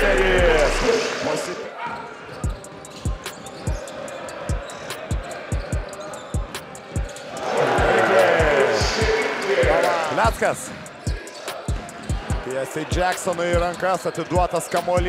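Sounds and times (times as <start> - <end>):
voices: 0.0 - 15.0.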